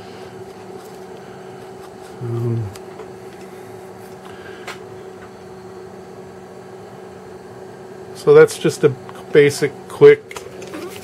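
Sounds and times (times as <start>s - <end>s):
cooling fan humming: 0.0s - 11.0s.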